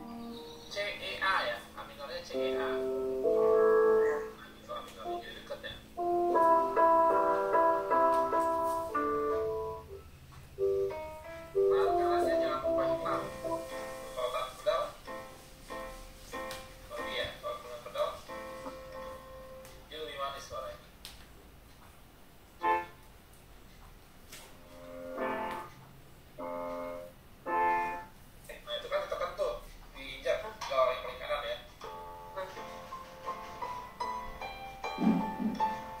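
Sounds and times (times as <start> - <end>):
keyboard playing a tune with chords: 0.0 - 0.9, 2.4 - 4.5, 5.1 - 5.4, 6.0 - 14.4, 18.2 - 19.8, 22.6 - 23.0, 24.8 - 25.7, 26.4 - 28.1, 33.6 - 36.0.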